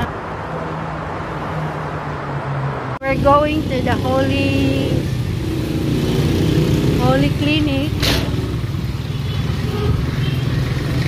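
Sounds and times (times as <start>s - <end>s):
traffic noise: 0.0s - 11.0s
vehicle engines running: 0.9s - 11.0s.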